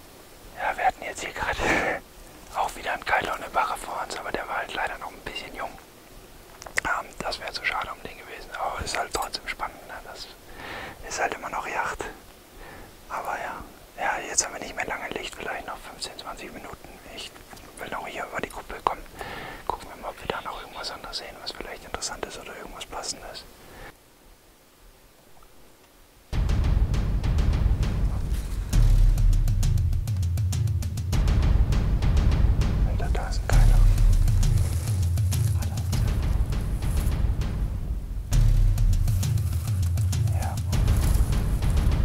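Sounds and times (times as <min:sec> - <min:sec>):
man whispering: 0:00.5 - 0:05.8, 0:06.6 - 0:23.9, 0:27.8 - 0:28.5, 0:32.8 - 0:37.0, 0:39.5 - 0:41.7.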